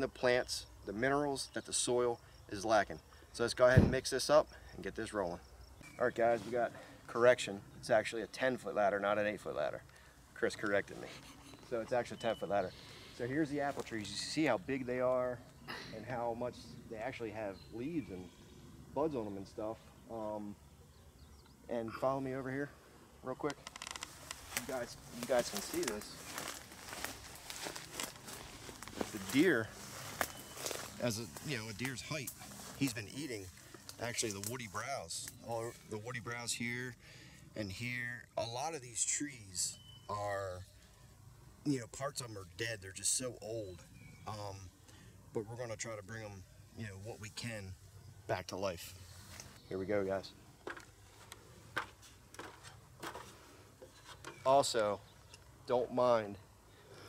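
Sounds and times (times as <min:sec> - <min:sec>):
footsteps rustling through grass: 0:13.2 - 0:14.2, 0:24.1 - 0:34.9.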